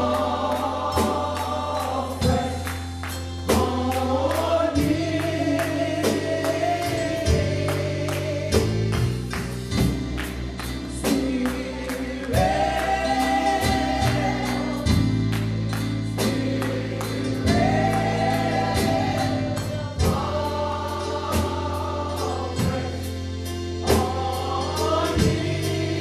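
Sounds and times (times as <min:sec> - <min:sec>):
choir singing gospel: 0:00.0 - 0:26.0
drum kit beat: 0:00.0 - 0:26.0
keyboard: 0:00.0 - 0:26.0.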